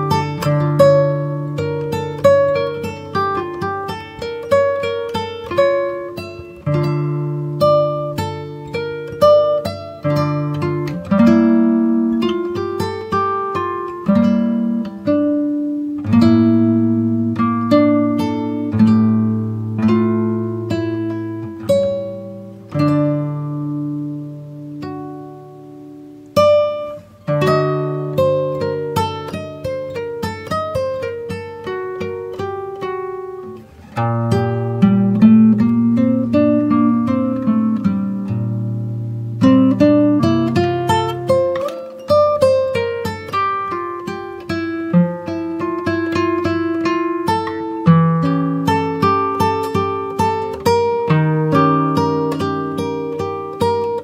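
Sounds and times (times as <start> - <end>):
plucked guitar notes: 0.0 - 54.0.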